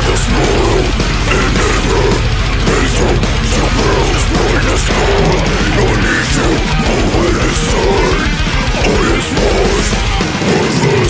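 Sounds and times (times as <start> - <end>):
heavy metal song: 0.0 - 11.0
man's harsh vocals: 0.0 - 11.0.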